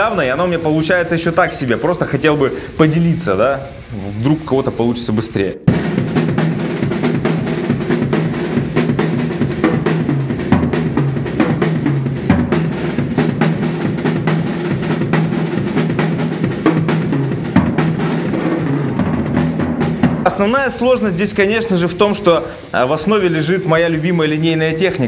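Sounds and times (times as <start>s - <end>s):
drum kit playing fast groove: 0.0s - 25.0s.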